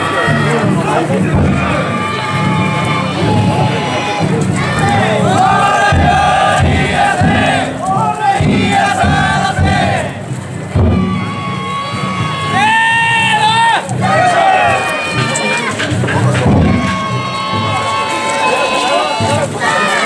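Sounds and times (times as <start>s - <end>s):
group shouting rhythmic calls: 0.0s - 20.0s.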